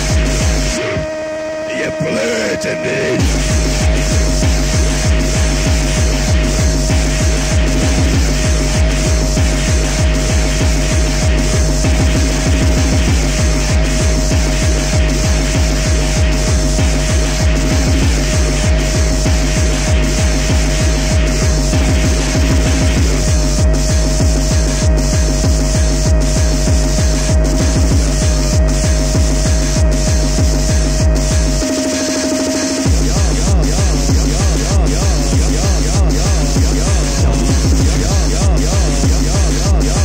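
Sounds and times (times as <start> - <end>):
heavy kick drum: 0.0 - 1.2, 3.2 - 40.0
high synth note: 0.0 - 40.0.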